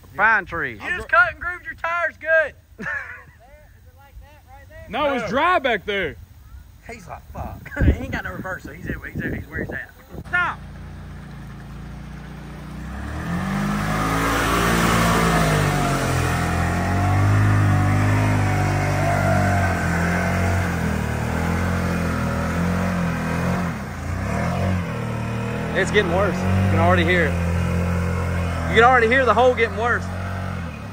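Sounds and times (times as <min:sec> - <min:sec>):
tires churning through mud: 0:09.1 - 0:30.9
buggy engine revving hard: 0:10.2 - 0:30.9.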